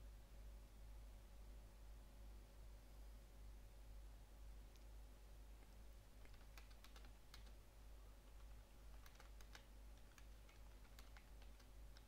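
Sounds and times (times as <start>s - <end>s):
steady low hum: 0.0s - 12.0s
computer keyboard typing: 6.2s - 7.6s, 8.2s - 12.0s.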